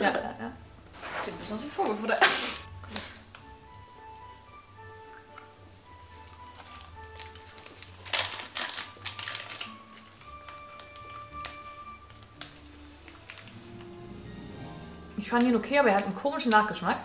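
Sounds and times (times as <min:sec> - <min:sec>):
soft background music: 0:00.0 - 0:17.0.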